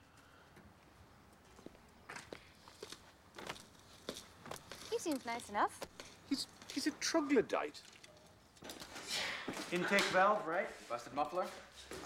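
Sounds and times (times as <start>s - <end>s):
faint footsteps: 1.3s - 7.2s.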